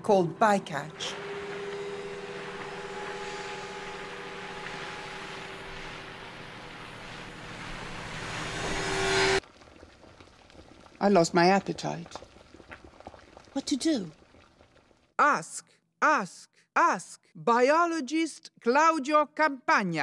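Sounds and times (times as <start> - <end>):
engine-like rushing drone: 0.6 - 9.4.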